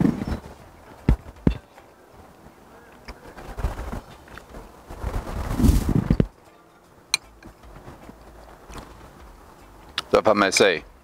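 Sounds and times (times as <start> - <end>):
rustling noise: 0.0 - 6.5.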